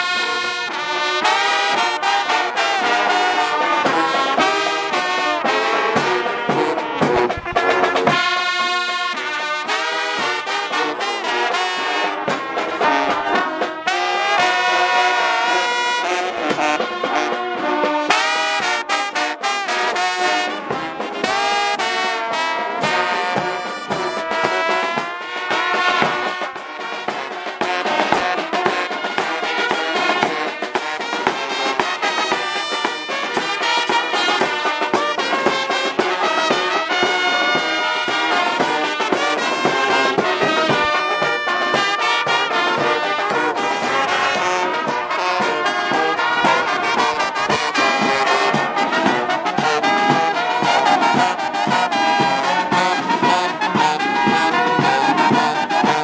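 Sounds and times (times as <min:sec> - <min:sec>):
brass band playing: 0:00.0 - 0:56.0
drums: 0:00.0 - 0:56.0.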